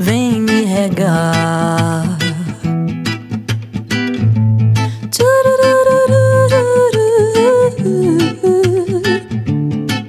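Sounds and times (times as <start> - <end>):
woman singing wordless vocal: 0.0 - 2.8, 4.9 - 9.4
plucked nylon-string guitar: 0.0 - 10.0.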